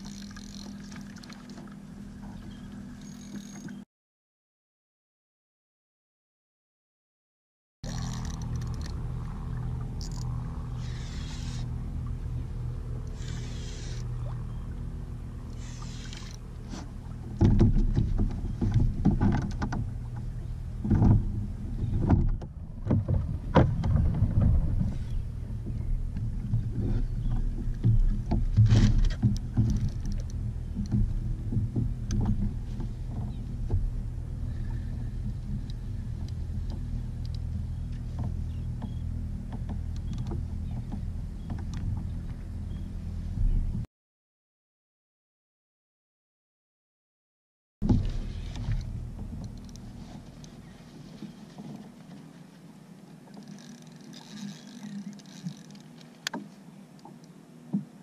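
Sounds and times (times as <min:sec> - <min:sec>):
steady low hum: 0:00.0 - 0:03.8, 0:07.8 - 0:43.9, 0:47.8 - 0:58.0
water slapping against hull: 0:15.4 - 0:42.3, 0:47.8 - 0:52.4
knocks on kayak: 0:17.4 - 0:19.8.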